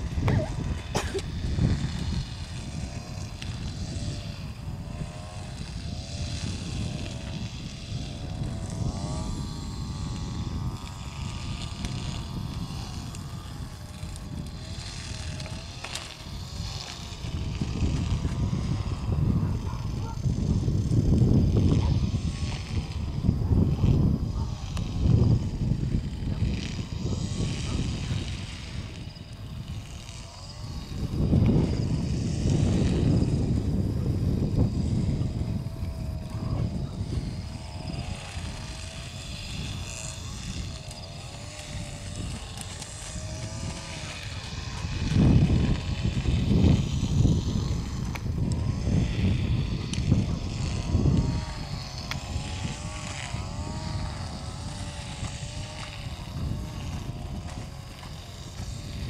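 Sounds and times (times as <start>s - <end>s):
faint wavering drone: 0.0s - 59.0s
wind rumbling on microphone: 0.0s - 59.0s.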